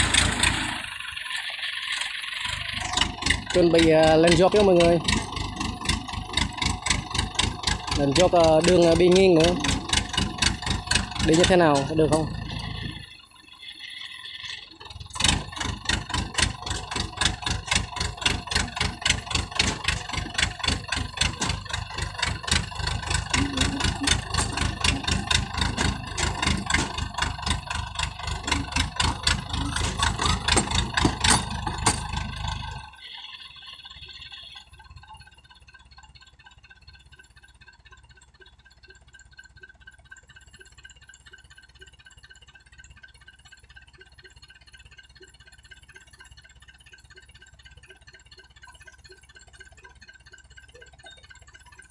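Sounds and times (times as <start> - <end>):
diesel engine chugging: 0.0 - 51.9.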